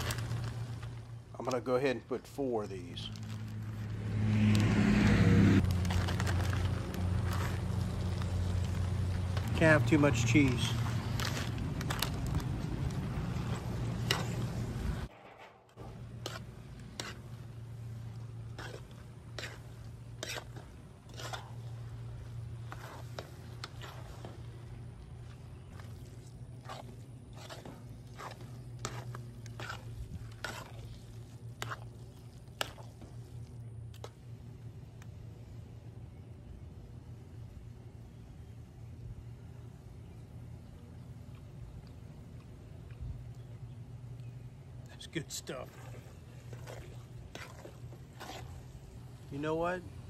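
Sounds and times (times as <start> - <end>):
steady low hum: 0.0 - 50.0
spoon scraping a pot: 18.5 - 21.7, 26.6 - 31.0, 45.7 - 48.7.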